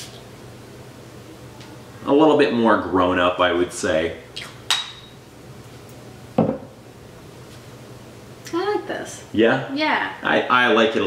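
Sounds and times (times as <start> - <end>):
glass bottle clinking: 4.7 - 5.2
bottle knocking on table: 6.4 - 6.8.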